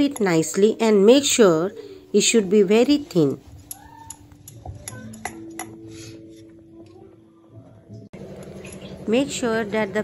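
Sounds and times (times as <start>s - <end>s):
kitchen utensils clicking and knocking: 0.0s - 0.7s, 3.2s - 5.9s.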